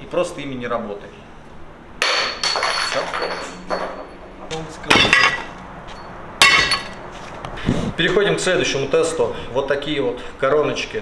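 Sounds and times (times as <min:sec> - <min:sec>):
metal bits clattering into cardboard box: 0:02.1 - 0:04.1.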